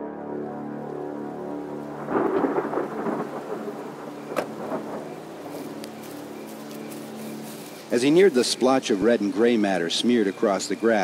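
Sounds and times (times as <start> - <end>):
dark music chord: 0.0 - 7.8
thunder crack: 1.9 - 5.5
thunder rumbling crash: 1.9 - 5.5.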